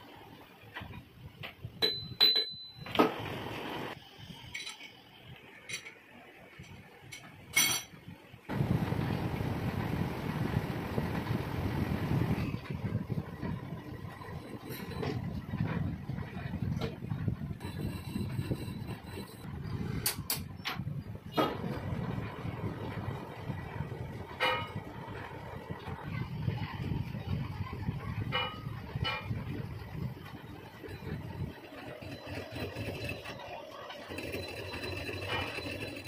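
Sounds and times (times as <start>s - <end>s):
metal lathe running: 30.3s - 36.0s.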